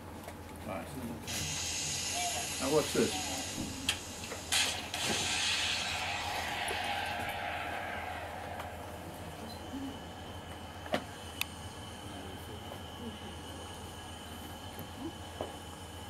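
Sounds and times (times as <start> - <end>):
steady electrical hum: 0.7 - 16.0
rushing noise: 2.1 - 12.6
sharp bang: 4.4 - 11.3.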